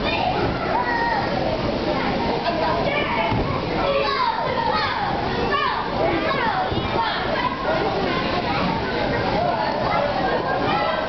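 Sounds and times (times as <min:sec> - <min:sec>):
children shouting and squealing: 0:00.0 - 0:11.0.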